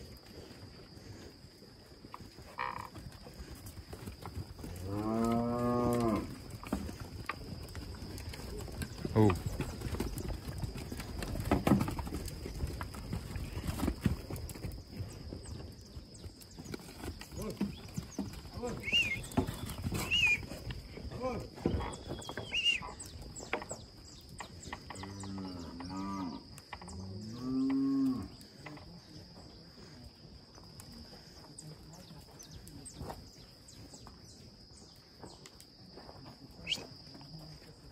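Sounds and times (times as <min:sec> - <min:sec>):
hooves knocking and shuffling: 0:00.0 - 0:37.9.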